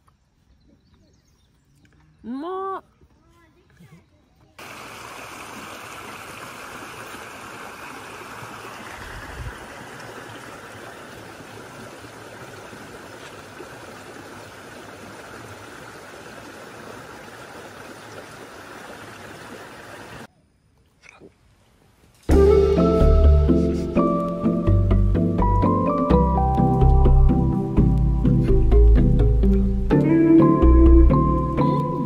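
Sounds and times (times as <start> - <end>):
stream rushing over rocks: 4.6 - 20.3.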